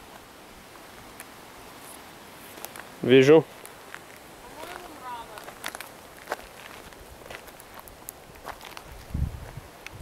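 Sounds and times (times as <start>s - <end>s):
faint outdoor hiss: 0.0s - 10.0s
footsteps on dirt and leaves: 1.8s - 9.7s.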